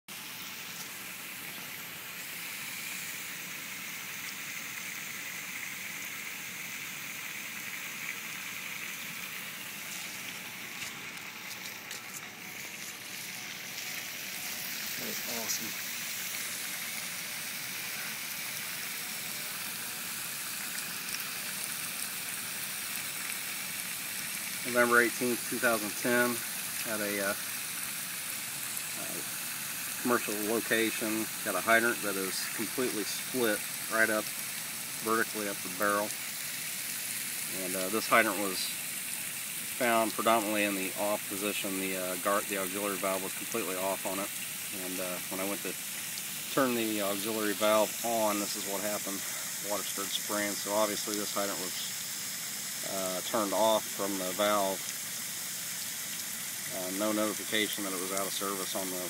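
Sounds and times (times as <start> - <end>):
water spraying from hydrant: 0.1 - 59.0.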